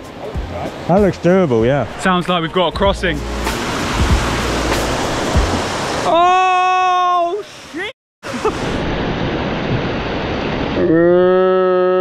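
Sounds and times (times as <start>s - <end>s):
stream rushing over rocks: 0.0s - 10.8s.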